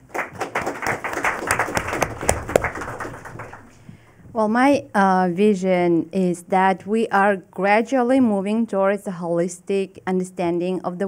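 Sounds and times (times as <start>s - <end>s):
audience applauding: 0.0s - 3.8s.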